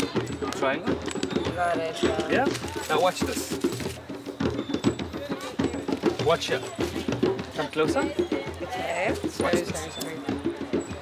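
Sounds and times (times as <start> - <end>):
drumming: 0.0 - 11.0
people talking: 6.2 - 11.0.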